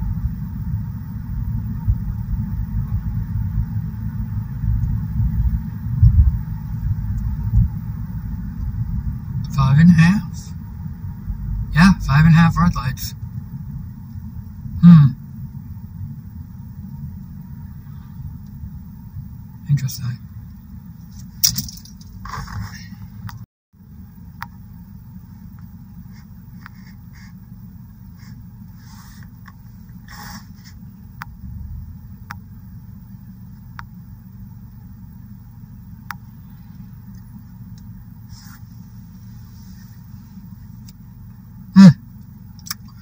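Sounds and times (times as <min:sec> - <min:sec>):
car engine idling: 0:00.0 - 0:43.0.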